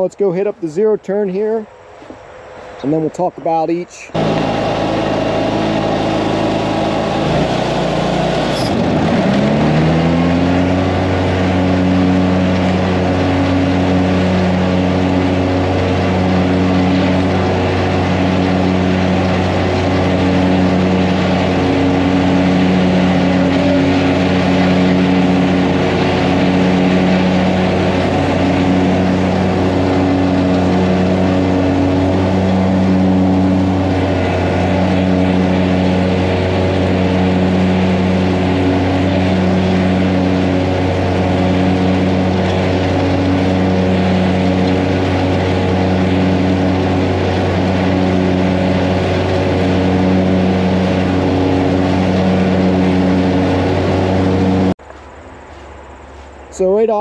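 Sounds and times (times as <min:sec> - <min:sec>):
mower engine drone: 0:00.0 - 0:57.0.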